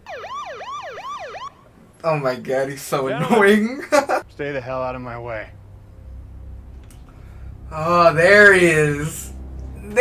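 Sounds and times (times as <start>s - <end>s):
electronic siren yelping: 0.0s - 1.7s.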